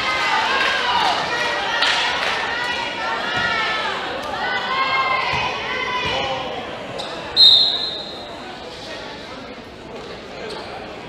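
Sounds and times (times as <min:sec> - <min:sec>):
voices: 0:00.0 - 0:11.0
referee's whistle blast: 0:07.4 - 0:08.3.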